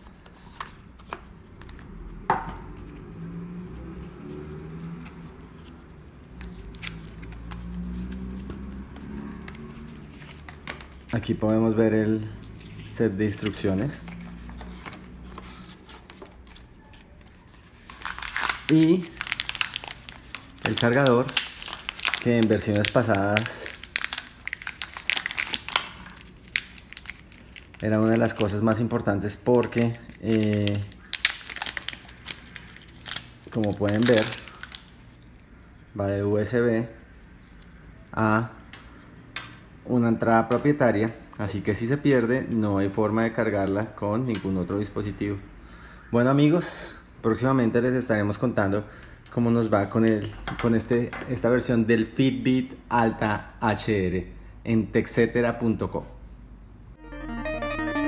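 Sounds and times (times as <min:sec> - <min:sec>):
cardboard and paper rustling: 0:12.4 - 0:35.3
packaging pouch crinkling and tearing: 0:17.7 - 0:35.2.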